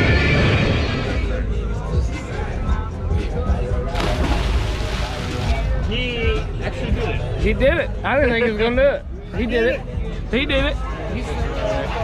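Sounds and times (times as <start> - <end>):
person splashing into water: 4.0 - 5.8.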